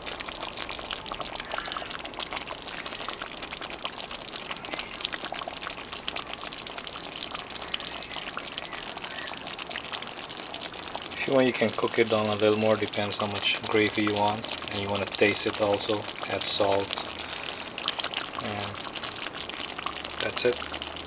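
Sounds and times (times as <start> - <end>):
thick curry bubbling in a pot: 0.0 - 21.0.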